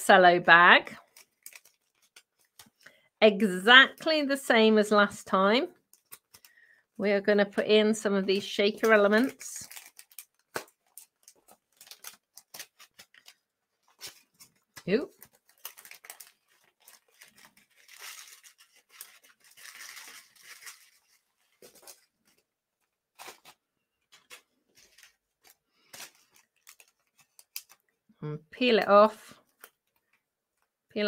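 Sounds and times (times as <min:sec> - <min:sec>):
cellophane bag crinkling: 0:00.9 - 0:03.0, 0:08.4 - 0:28.0.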